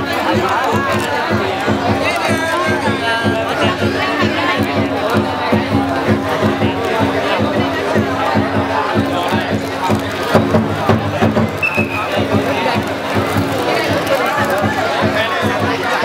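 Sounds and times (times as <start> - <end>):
crowd voices: 0.0 - 16.0
drum beating fast rhythm: 0.0 - 16.0
festival music: 0.0 - 16.0.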